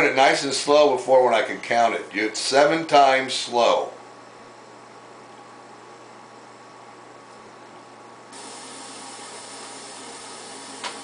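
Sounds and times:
recording hiss: 0:08.3 - 0:11.0.

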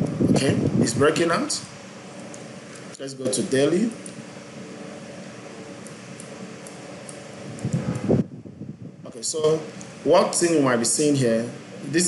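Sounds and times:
mechanical room hum: 0:00.0 - 0:12.0.

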